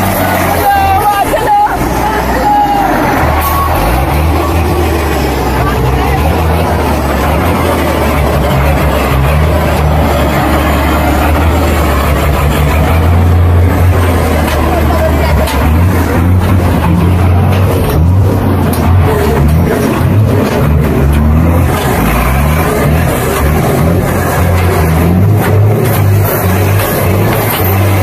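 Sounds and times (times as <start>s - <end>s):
truck engine running loud: 0.0s - 28.0s.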